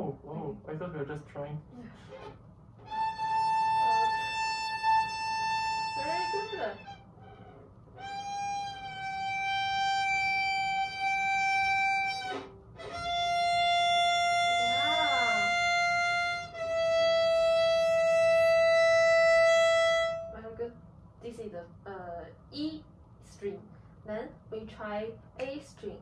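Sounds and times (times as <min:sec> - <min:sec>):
violin bowed notes: 0:02.1 - 0:20.6.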